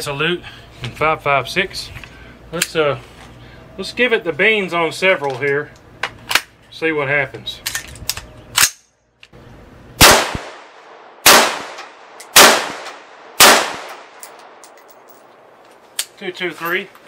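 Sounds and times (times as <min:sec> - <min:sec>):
rifle shots with echo: 0:10.0 - 0:14.7.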